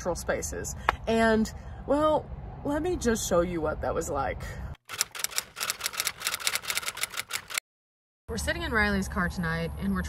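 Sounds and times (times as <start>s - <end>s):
typewriter keys clacking: 4.9s - 7.6s.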